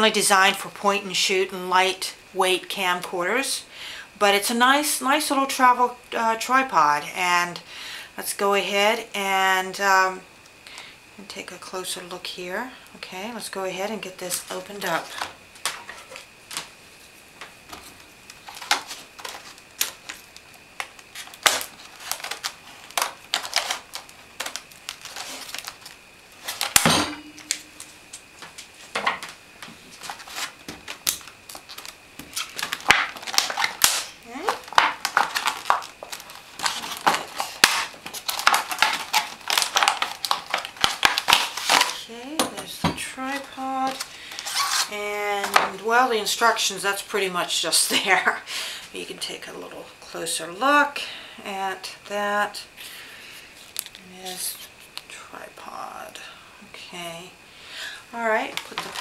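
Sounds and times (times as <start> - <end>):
plastic blister pack crackling: 18.0 - 28.2, 29.2 - 42.1, 43.3 - 44.9, 58.5 - 59.0.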